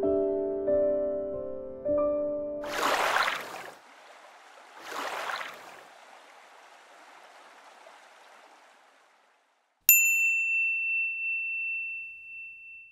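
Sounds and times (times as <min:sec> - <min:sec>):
bright bell-like ding: 0:09.9 - 0:12.9.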